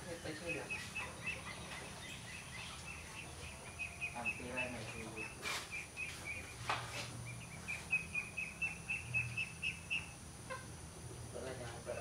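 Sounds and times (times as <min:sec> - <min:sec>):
bird chirping: 0:00.0 - 0:10.7.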